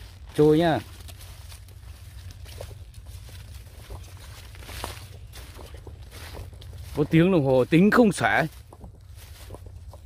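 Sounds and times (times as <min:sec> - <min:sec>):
footsteps through dry grass: 0:00.0 - 0:10.0
steady low rumble: 0:00.0 - 0:10.0.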